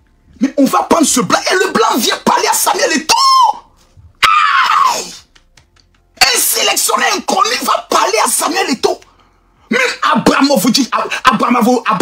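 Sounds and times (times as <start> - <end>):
man screaming: 1.7 - 3.6, 4.2 - 5.2.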